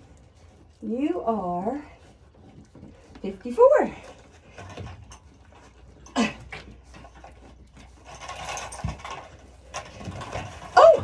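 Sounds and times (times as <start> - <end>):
rattling clatter of scale: 4.0 - 11.0.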